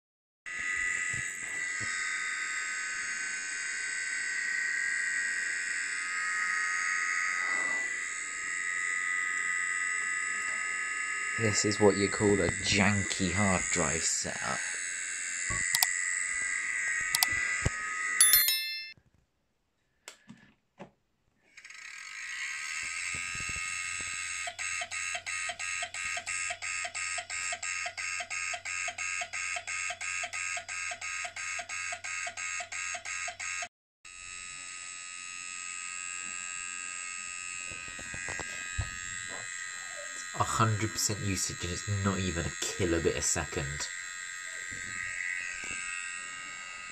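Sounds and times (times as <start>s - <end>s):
hard drive whine: 0.5s - 18.3s, 21.8s - 27.6s, 34.1s - 46.9s.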